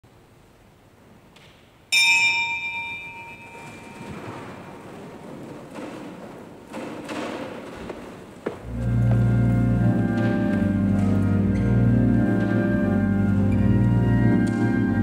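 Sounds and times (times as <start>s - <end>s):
bell ringing: 1.9s - 4.5s
rustling: 3.2s - 14.4s.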